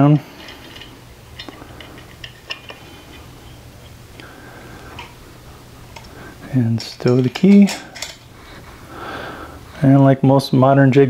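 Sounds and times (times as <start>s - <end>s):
low hum: 0.0s - 9.8s.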